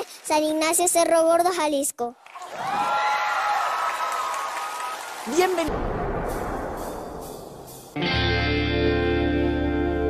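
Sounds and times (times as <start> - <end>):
studio audience applauding: 0.0 - 0.9, 2.2 - 5.7.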